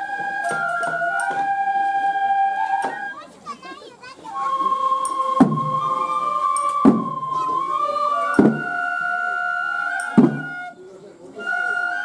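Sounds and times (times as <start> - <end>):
bamboo flute tone: 0.0 - 3.6, 4.2 - 12.0
children chattering and calling out: 0.0 - 12.0.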